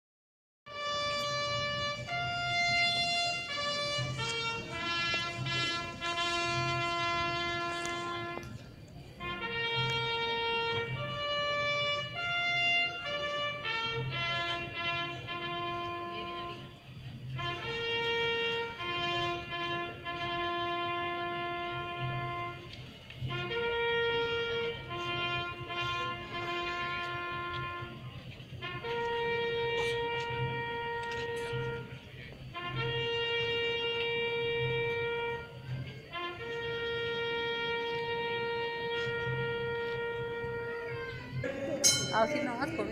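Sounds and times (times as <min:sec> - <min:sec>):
brass band playing march: 0:00.7 - 0:42.9.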